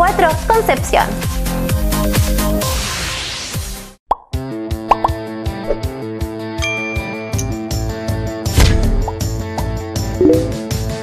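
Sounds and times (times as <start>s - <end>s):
upward-sliding pop sound effect: 10.2s - 10.6s
upbeat advertising jingle: 10.2s - 10.7s.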